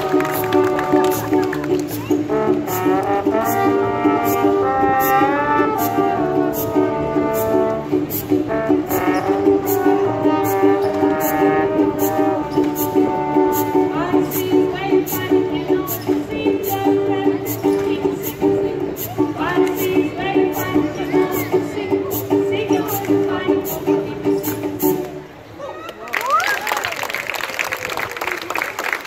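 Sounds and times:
brass band playing jazzy tune: 0.0 - 25.1.

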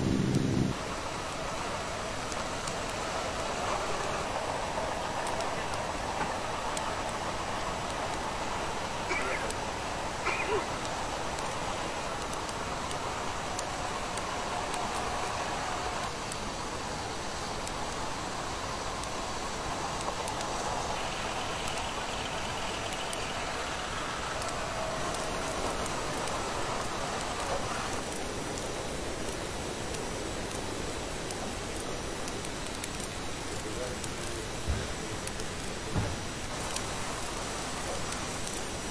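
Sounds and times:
faint high whine: 0.0 - 9.6, 13.0 - 28.9
tracked vehicle engine and tracks: 0.0 - 38.9.

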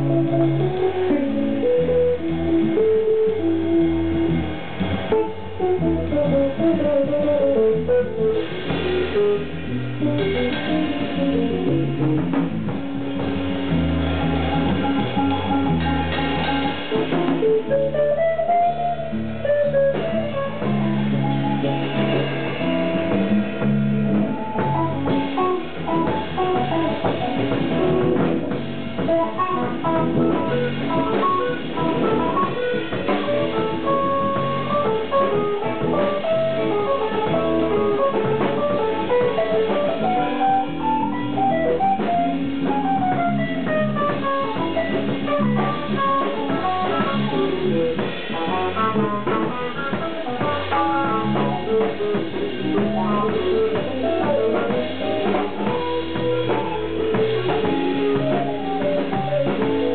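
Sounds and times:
drum kit: 0.0 - 59.9
electric bass: 0.0 - 59.9
electric guitar melody: 0.0 - 59.9
fusion jazz band playing: 0.0 - 59.9.

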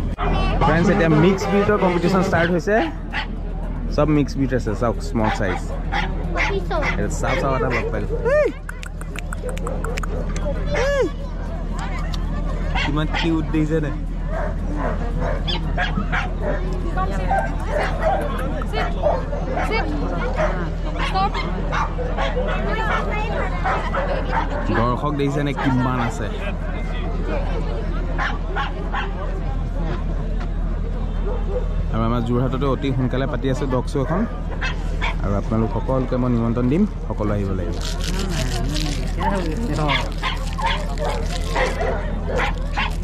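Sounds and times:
dogs yipping and barking: 0.0 - 3.4, 5.2 - 13.4, 14.0 - 26.1, 28.1 - 29.3, 34.0 - 35.2, 38.8 - 43.0
crowd chatter: 0.0 - 43.0.

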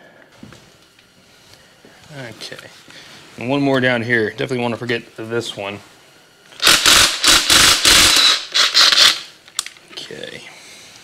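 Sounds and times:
cordless power tool bursts: 6.6 - 9.3.

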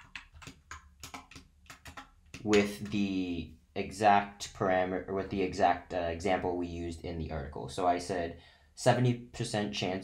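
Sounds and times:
computer keyboard typing: 0.0 - 3.0.

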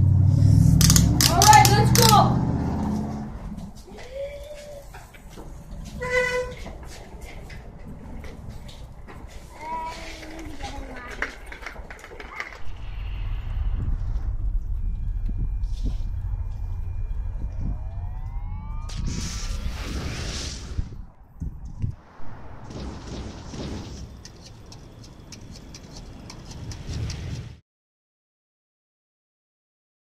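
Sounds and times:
rising whines: 0.0 - 4.0, 12.5 - 27.6
deep rumble of hovering spaceship: 12.5 - 27.4
short noisy blasts: 12.6 - 21.1, 22.0 - 24.7.

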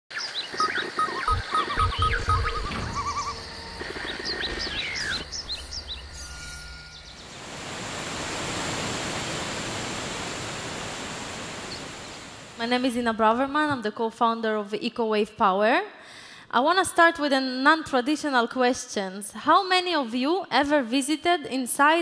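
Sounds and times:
music with bird-like chirps: 0.2 - 7.5
low thumps: 1.3 - 7.3
steady rushing noise: 1.3 - 12.6.

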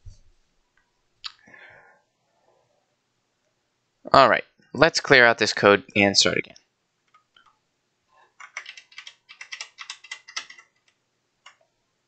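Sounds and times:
computer keyboard typing: 8.4 - 11.6.

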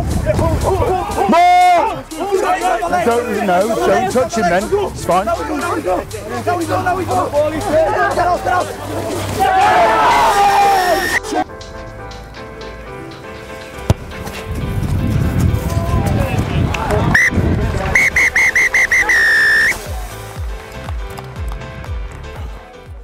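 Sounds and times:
music: 0.0 - 23.0
referee's whistle blasts: 10.7 - 11.2, 17.2 - 17.4, 18.0 - 19.8.

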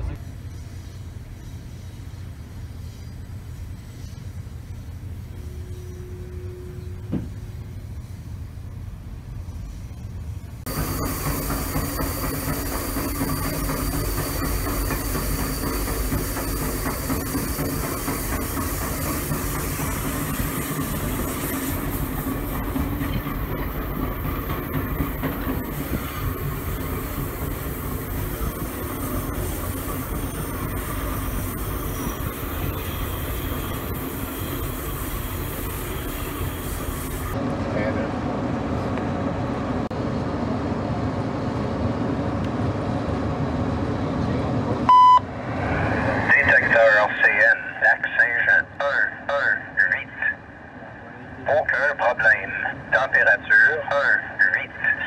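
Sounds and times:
train wheels rumbling on rails: 0.0 - 47.6.

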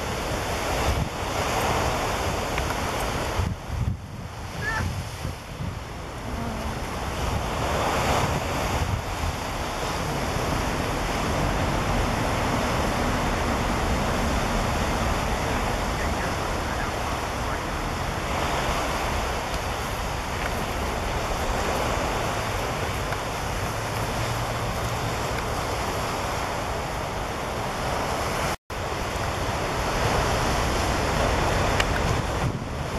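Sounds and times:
surf breaking on beach: 0.0 - 32.9
wind rumbling on microphone: 0.0 - 32.9.

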